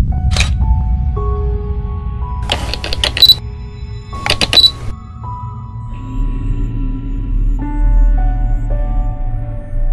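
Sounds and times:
ambient synth music: 0.0 - 9.9
camera shutter clicks: 2.4 - 3.4, 4.2 - 4.9.

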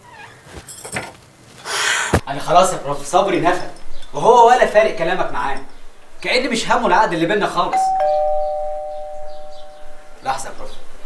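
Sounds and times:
two-tone doorbell chime: 7.7 - 10.2.

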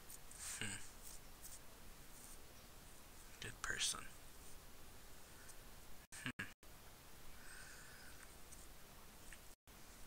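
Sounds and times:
faint whisper-like voice: 0.3 - 1.0.

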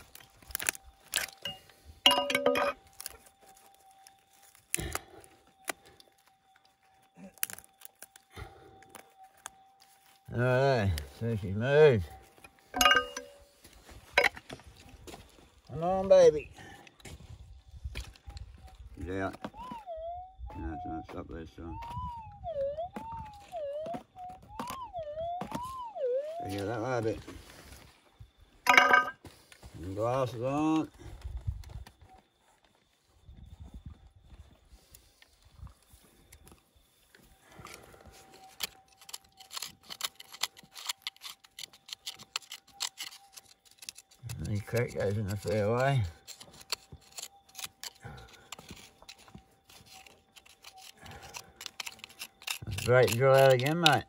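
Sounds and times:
metal tool clinking against rock: 0.5 - 3.2, 12.7 - 13.4, 14.1 - 14.5, 28.6 - 29.2, 39.0 - 54.0.

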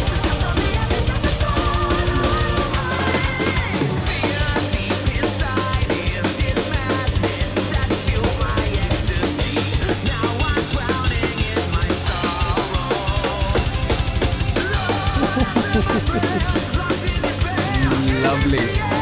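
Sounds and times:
band recording: 0.0 - 19.0
double-bass kick drum: 15.2 - 16.9.

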